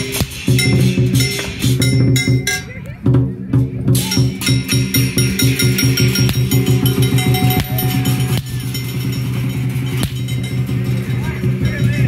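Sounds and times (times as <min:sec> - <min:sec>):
cymbals ringing: 0:00.0 - 0:02.8, 0:03.9 - 0:12.0
large drum fast roll: 0:03.1 - 0:12.0.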